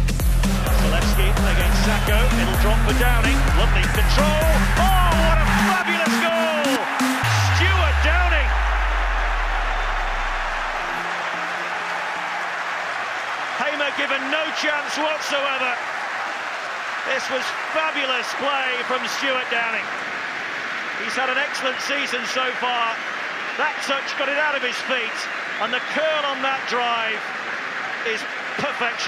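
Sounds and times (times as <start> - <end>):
electronic dance music: 0.0 - 15.8
stadium crowd noise: 0.0 - 29.0.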